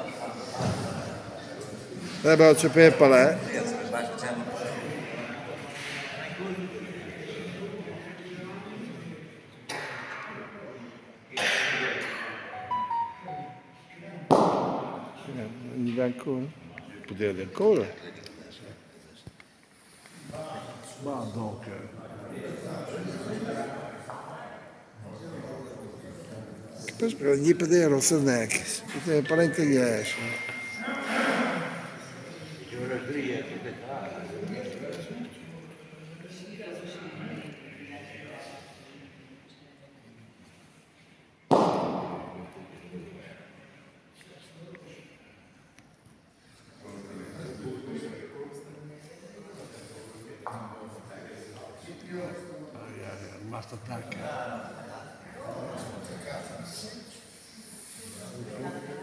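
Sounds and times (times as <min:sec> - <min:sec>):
clear high pure notes: 0:12.5 - 0:14.0.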